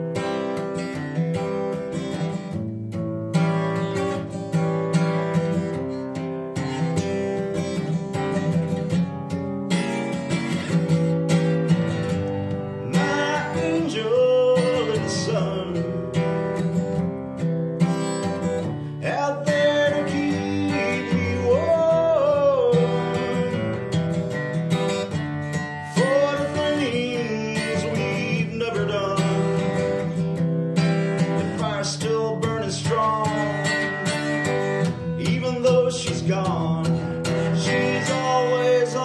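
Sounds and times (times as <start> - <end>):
acoustic guitar strumming: 0.0 - 39.0
man singing: 12.6 - 16.6, 18.6 - 24.0, 25.7 - 30.4, 31.0 - 39.0.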